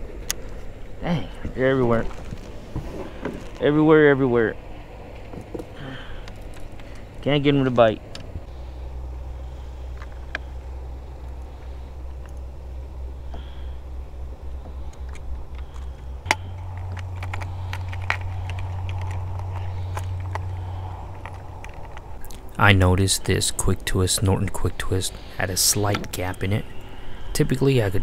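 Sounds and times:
steady low rumble: 0:00.0 - 0:28.0.

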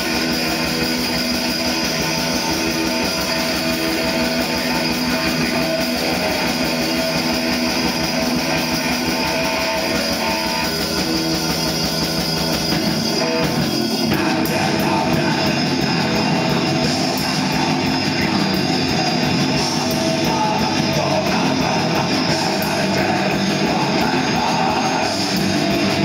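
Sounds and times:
heavy metal band playing live: 0:00.0 - 0:26.0.

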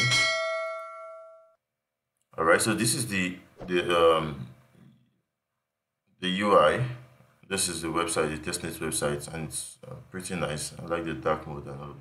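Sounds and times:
bell-like ding: 0:00.0 - 0:01.6.

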